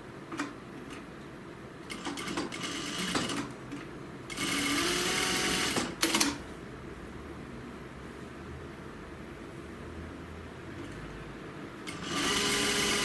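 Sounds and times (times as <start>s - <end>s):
sewing machine stitching: 1.9s - 3.5s, 4.3s - 6.4s, 11.9s - 13.0s.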